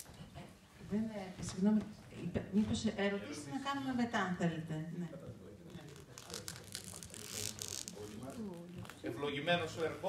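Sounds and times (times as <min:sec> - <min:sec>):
rustling crinkling noise: 0:05.6 - 0:10.0.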